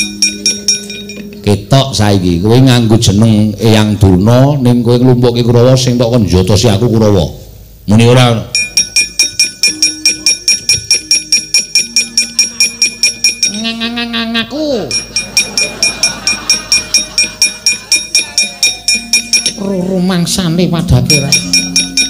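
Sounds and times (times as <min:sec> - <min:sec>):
metal plates clanking rhythmically: 0:00.0 - 0:01.4, 0:08.6 - 0:13.9, 0:14.9 - 0:19.6, 0:21.1 - 0:22.0
man calling out: 0:13.5 - 0:15.0.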